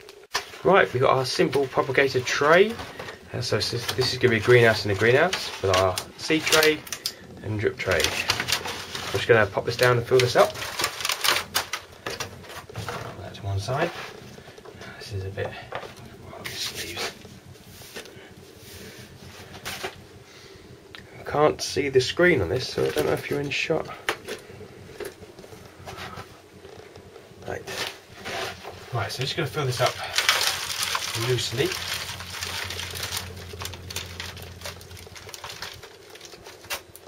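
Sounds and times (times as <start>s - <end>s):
low steady hum: 0.0s - 37.0s
hands crumbling compost: 27.5s - 37.0s.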